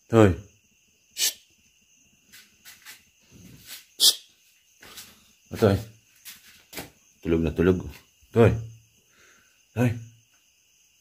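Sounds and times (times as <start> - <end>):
crickets trilling: 0.0 - 11.0
sharp hissing bursts: 1.1 - 1.5.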